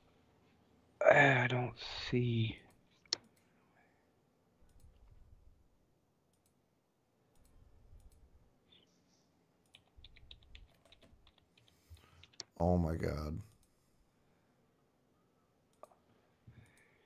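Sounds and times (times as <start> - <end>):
computer mouse and keyboard clicks: 4.6 - 5.2, 7.3 - 8.3, 9.6 - 12.6, 15.7 - 16.9.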